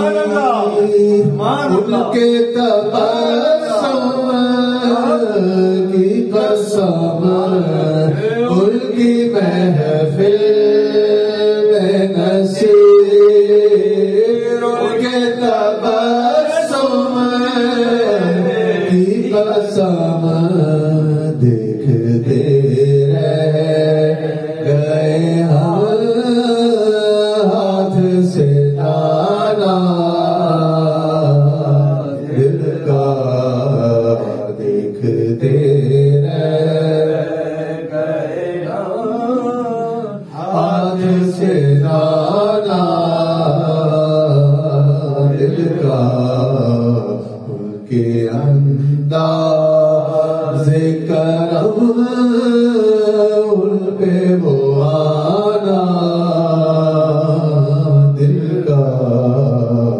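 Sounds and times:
man chanting: 0.0 - 59.9.

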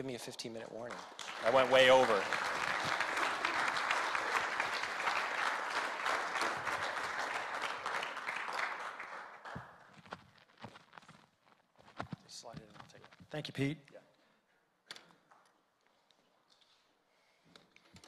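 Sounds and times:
audience applauding: 0.9 - 9.9.

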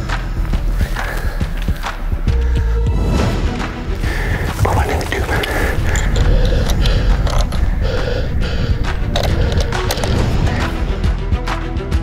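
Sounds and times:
low rumble: 4.1 - 11.1
rifle clicks and scrapes: 9.1 - 10.2.

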